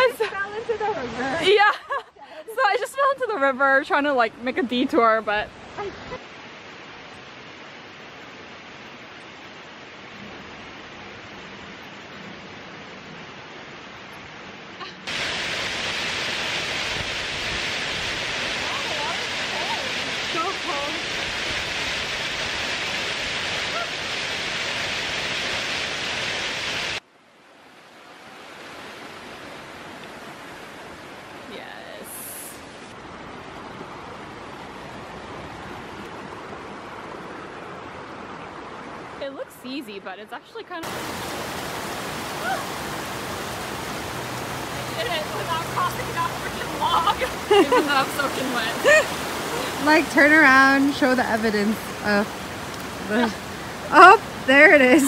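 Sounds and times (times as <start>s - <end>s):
rushing creek: 0.0s - 55.0s.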